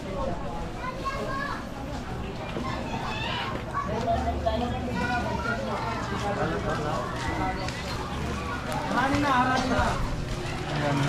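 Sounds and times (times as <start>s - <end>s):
street noise: 0.0s - 11.0s
voices chattering: 0.0s - 11.0s.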